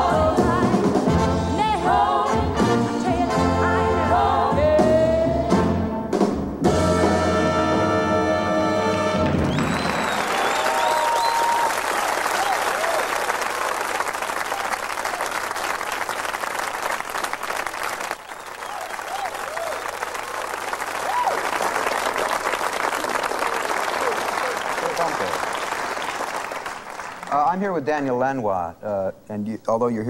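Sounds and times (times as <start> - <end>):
audience applauding: 8.9 - 27.6
whistle in crowd: 9.3 - 11.8, 18.3 - 19.9
crowd whoops: 9.4 - 15.8, 18.1 - 26.7.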